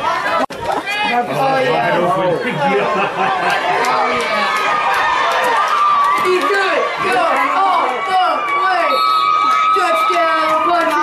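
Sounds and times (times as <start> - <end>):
spectators shouting and cheering: 0.0 - 11.0.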